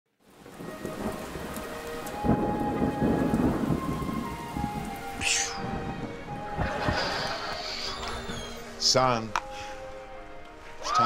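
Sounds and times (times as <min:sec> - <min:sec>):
steady rain: 0:00.1 - 0:11.0
soft sustained music tones: 0:00.2 - 0:11.0
rolling thunder: 0:00.3 - 0:08.8.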